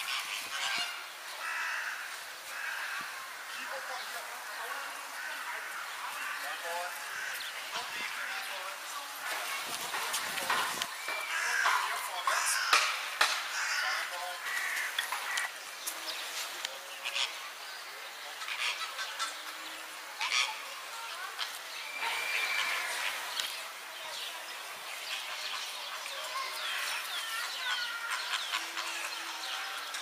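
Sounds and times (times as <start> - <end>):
outdoor background noise: 0.0 - 30.0
small birds chirping: 0.0 - 30.0.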